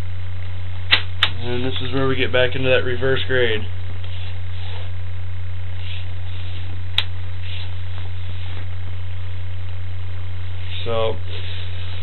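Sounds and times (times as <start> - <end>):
low electrical hum: 0.0 - 12.0
sharp click: 0.9 - 1.4.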